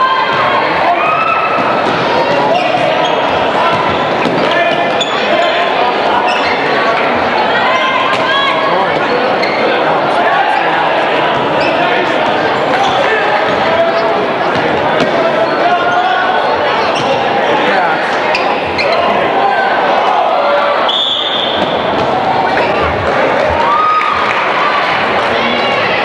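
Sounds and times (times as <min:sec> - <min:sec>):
crowd chatter and shouts: 0:00.0 - 0:26.0
referee whistle: 0:20.8 - 0:21.7.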